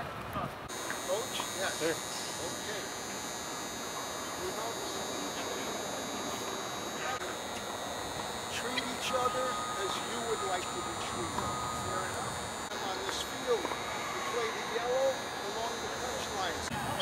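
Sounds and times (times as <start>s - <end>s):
faint chatter: 0.4s - 17.0s
high-pitched buzz: 0.7s - 17.0s.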